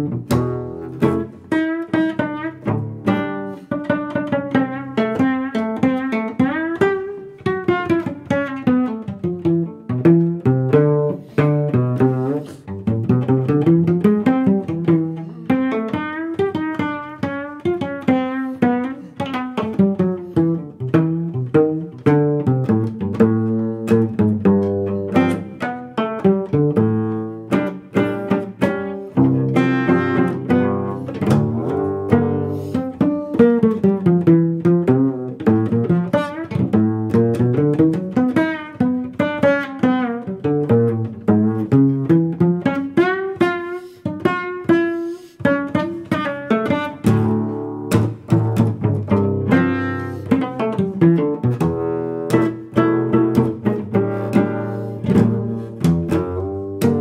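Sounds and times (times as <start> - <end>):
plucked cello jazz lines: 0.0 - 57.0.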